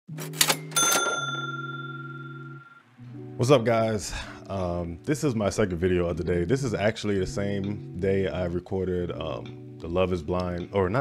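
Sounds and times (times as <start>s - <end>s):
bell-like ding: 0.7s - 2.9s
low held tone: 0.8s - 3.0s.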